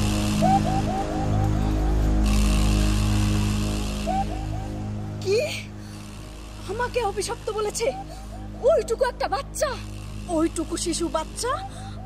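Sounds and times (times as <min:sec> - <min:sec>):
short rising notes: 0:00.0 - 0:06.6
low steady drone: 0:00.0 - 0:12.0.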